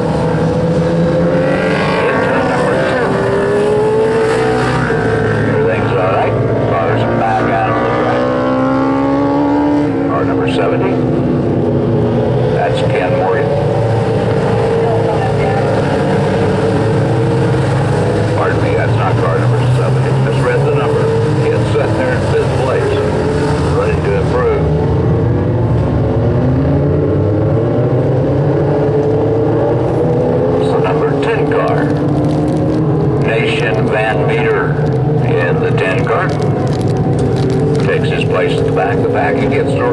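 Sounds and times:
race car engines on dirt track: 0.0 - 39.9
race car passing close by: 0.0 - 39.9.

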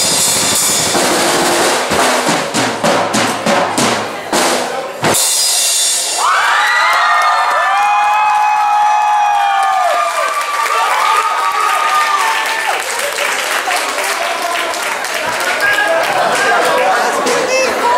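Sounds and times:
audience cheering and whooping: 6.2 - 17.9.

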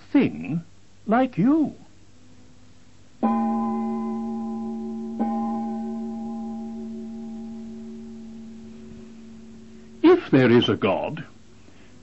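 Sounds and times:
bell-like ringing tone: 3.2 - 11.6.

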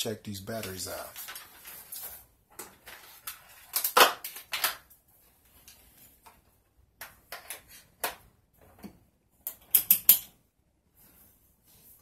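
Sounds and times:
paper rustling: 0.5 - 6.2.

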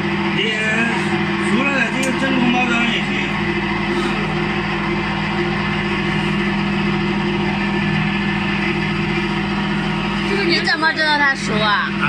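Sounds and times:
electric motor humming: 0.0 - 12.0.

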